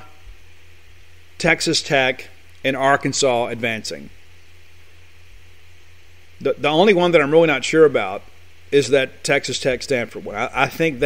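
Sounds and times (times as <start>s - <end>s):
background hiss: 0.0s - 11.0s
low even hum: 0.0s - 11.0s.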